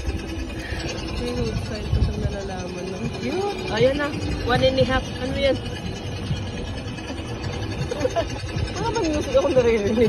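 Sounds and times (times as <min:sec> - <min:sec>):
ride car rumbling on rail: 0:00.0 - 0:10.0.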